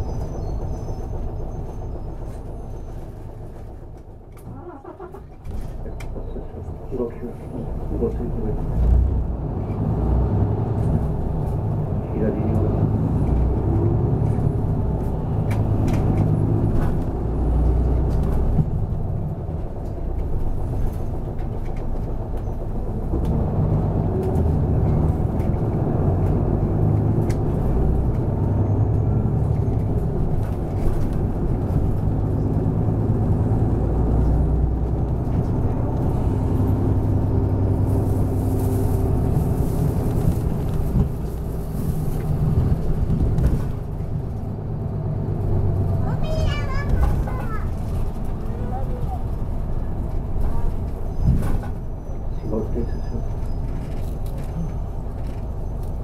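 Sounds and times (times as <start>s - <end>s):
bus diesel engine: 0.0s - 56.0s
road noise: 0.0s - 56.0s.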